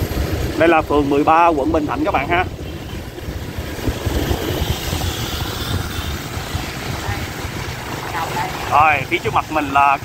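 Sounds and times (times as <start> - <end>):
motorbike engine: 0.0 - 10.0
passing scooters: 0.0 - 10.0
wind buffeting microphone: 0.0 - 10.0.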